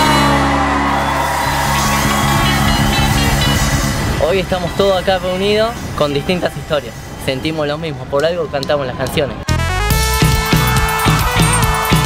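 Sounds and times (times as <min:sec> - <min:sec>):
rock band music with guitar: 0:00.0 - 0:04.2, 0:09.9 - 0:12.0.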